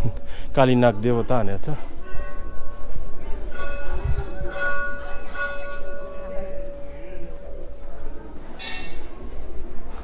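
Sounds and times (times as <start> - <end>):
metal temple bell ringing: 0.0 - 9.7.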